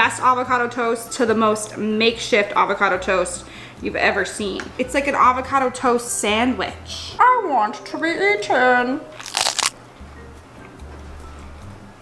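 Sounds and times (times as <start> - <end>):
faint background music: 0.0 - 12.0
toasted bread crunch: 9.2 - 9.7.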